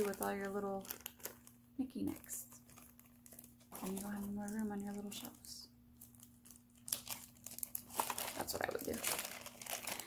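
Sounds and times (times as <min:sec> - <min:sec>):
faint steady hum: 0:00.0 - 0:10.0
packaging crinkling: 0:00.0 - 0:10.0.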